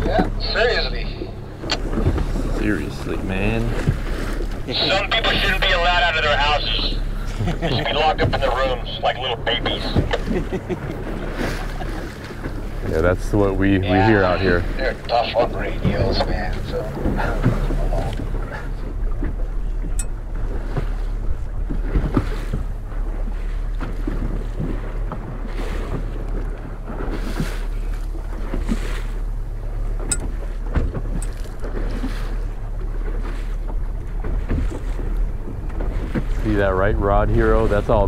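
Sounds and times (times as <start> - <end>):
choppy water washing past hull: 0.0 - 38.0
outboard motor running: 0.0 - 38.0.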